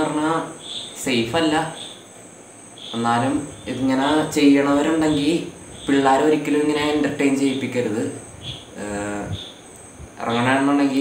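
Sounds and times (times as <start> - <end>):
man talking: 0.0 - 2.0, 2.9 - 9.5, 10.2 - 11.0
high-pitched chirring: 0.0 - 11.0.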